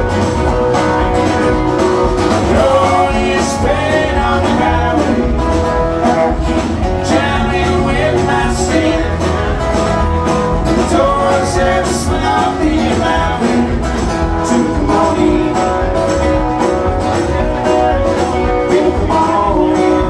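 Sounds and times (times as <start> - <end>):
acoustic guitar: 0.0 - 20.0
electric mandolin: 0.0 - 20.0
live country-rock band: 0.0 - 20.0.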